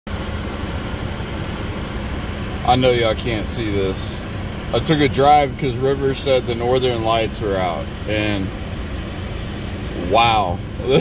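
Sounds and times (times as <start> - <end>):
low hum: 0.1 - 11.0
low mechanical rumble: 0.1 - 11.0.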